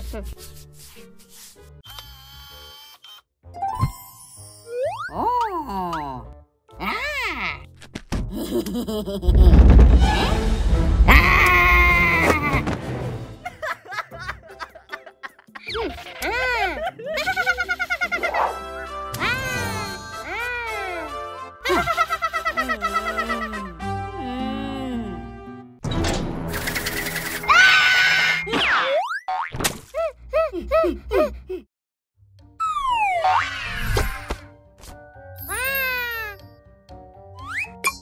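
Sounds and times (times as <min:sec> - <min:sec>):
light children's music: 0:11.5 - 0:25.8, 0:34.0 - 0:38.0
cartoon whistling glide: 0:32.6 - 0:33.9.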